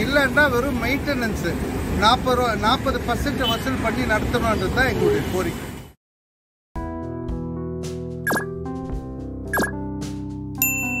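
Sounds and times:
bell-like ding: 10.6 - 11.0.

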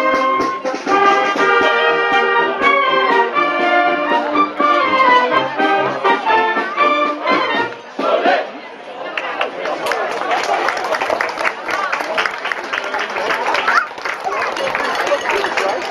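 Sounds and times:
wind band playing lively tune: 0.0 - 8.6, 12.9 - 15.9
crowd chatter: 0.0 - 15.9.

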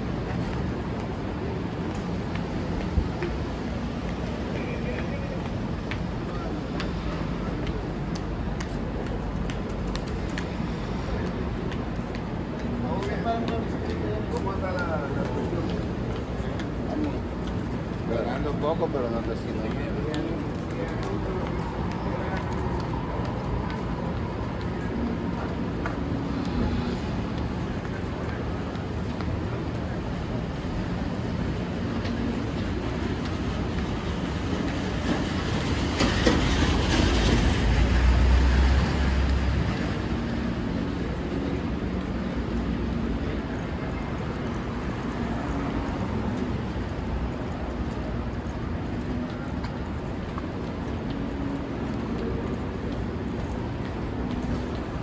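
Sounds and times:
city street traffic: 0.0 - 55.0.

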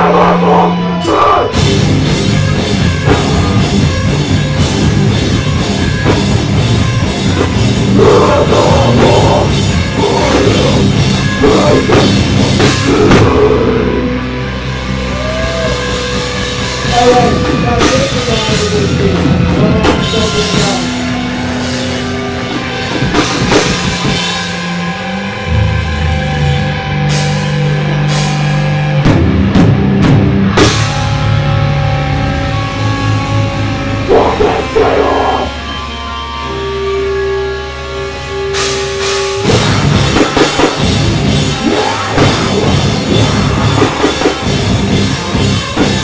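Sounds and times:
bass guitar: 0.0 - 46.0
distorted electric guitars: 0.0 - 46.0
metal band playing: 0.0 - 46.0
pounding drum kit: 0.9 - 35.6, 38.4 - 46.0.

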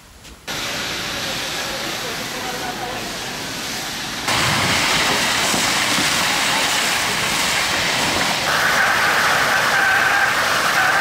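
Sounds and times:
water spray and steam hissing: 0.5 - 11.0.

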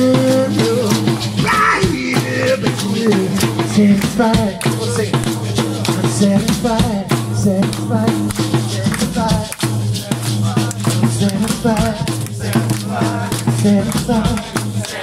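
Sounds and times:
low harmony voices: 0.0 - 6.4
sung lead line: 0.0 - 14.2
percussive beat: 0.0 - 15.0.

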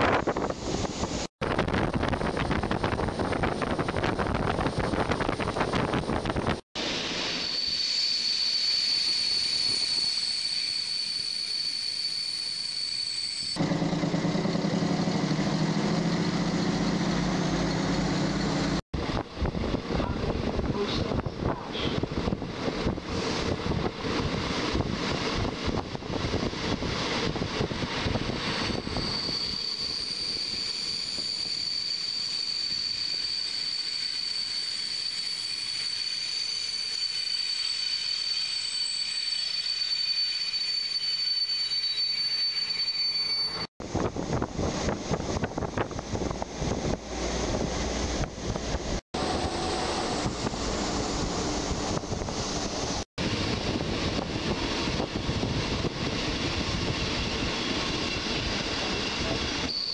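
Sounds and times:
train running hum: 13.6 - 36.7, 43.8 - 59.8.

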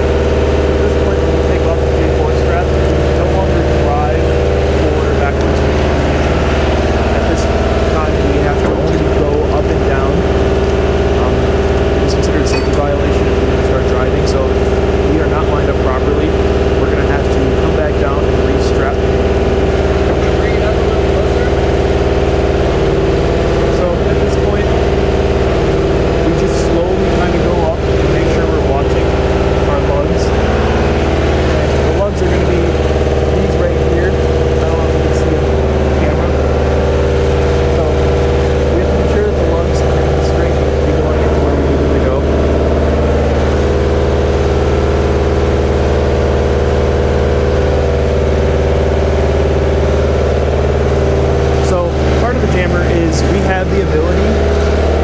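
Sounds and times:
truck engine droning: 0.0 - 55.0.

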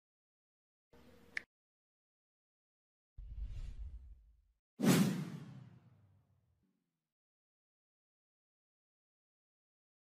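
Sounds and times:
low rumbling effect: 3.2 - 4.5.

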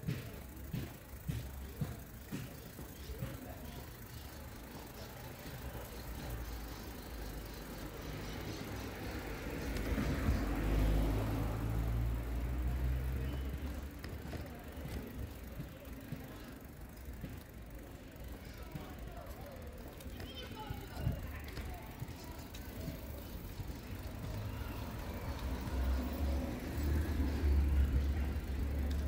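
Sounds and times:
street background noise: 0.0 - 29.0
car driving past: 9.8 - 13.6.

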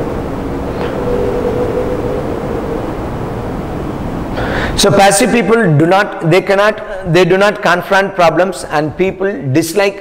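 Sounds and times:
faint humming tone: 0.0 - 5.4.

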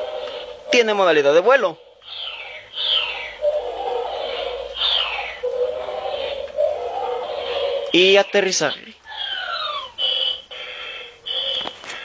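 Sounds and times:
toy electronic sound effect: 2.0 - 12.0.

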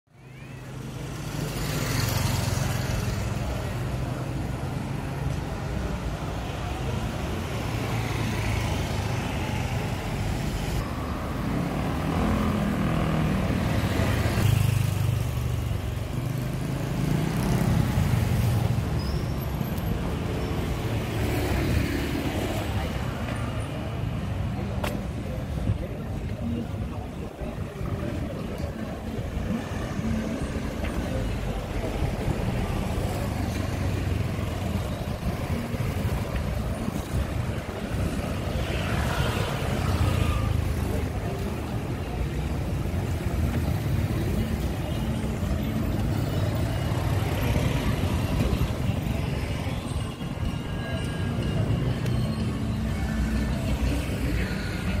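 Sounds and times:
motorbikes and cars passing: 0.2 - 55.0.

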